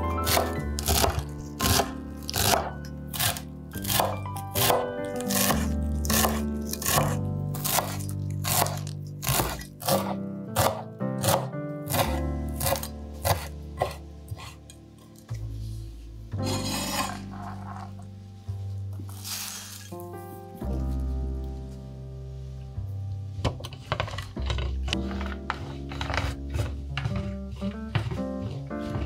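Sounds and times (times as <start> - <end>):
background music: 0.0 - 29.0
knife chopping on wooden board: 0.2 - 14.6, 25.6 - 29.0.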